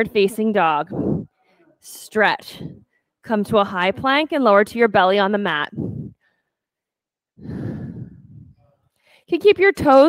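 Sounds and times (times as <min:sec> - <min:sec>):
person exhaling breathily: 0:07.4 - 0:08.6.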